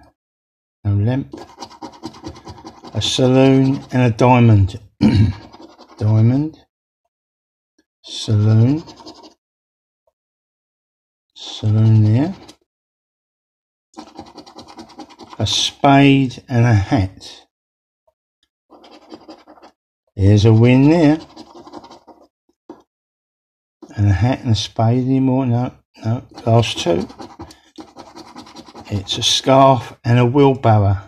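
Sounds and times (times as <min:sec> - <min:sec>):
coin scratching a scratchcard: 0:01.3 - 0:04.2, 0:05.3 - 0:06.1, 0:08.5 - 0:09.4, 0:11.4 - 0:12.6, 0:14.0 - 0:15.8, 0:18.7 - 0:22.8, 0:26.2 - 0:29.6.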